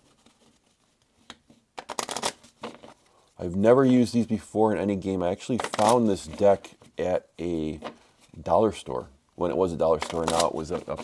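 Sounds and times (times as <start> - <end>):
playing cards shuffled by hand: 0.0 - 3.0, 5.5 - 6.9, 9.8 - 11.0.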